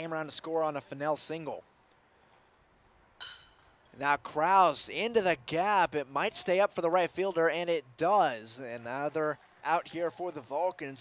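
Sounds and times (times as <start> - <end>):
metal bat striking ball: 3.2 - 3.8.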